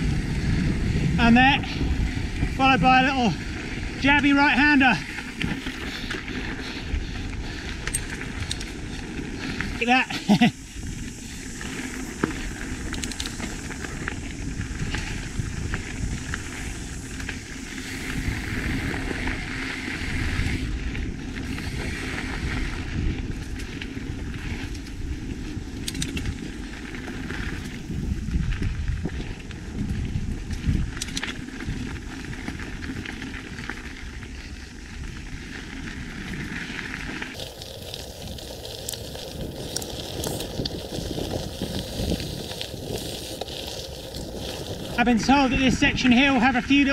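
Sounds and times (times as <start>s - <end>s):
bike tyres rumbling on dirt: 0.0s - 46.9s.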